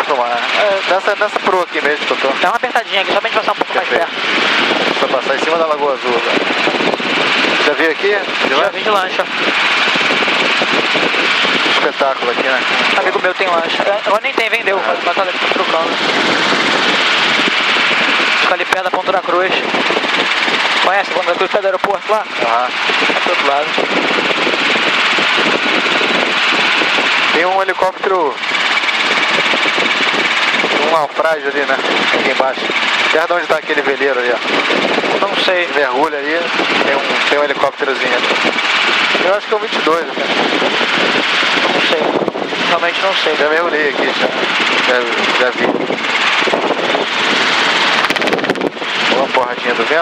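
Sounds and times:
helicopter cockpit rushing noise: 0:00.0 - 0:50.0.

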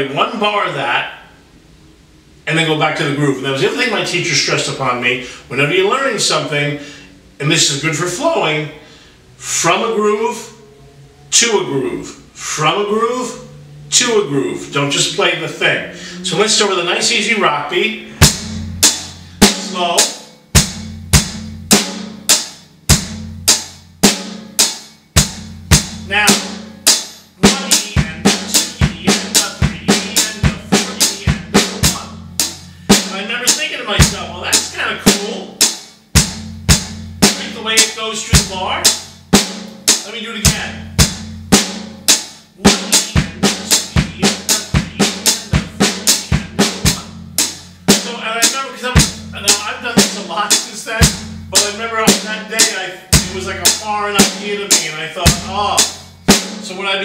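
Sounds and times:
kick drum ringing low: 0:17.9 - 0:19.6, 0:20.4 - 0:26.8, 0:36.1 - 0:37.4, 0:40.5 - 0:42.0, 0:45.6 - 0:47.6, 0:51.0 - 0:51.6
drum kit playing rock beat: 0:18.0 - 0:56.8.

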